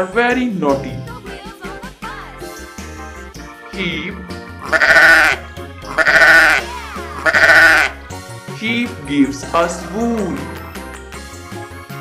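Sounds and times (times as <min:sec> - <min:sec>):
background music: 0:00.0 - 0:12.0
sheep bleating: 0:04.6 - 0:08.1.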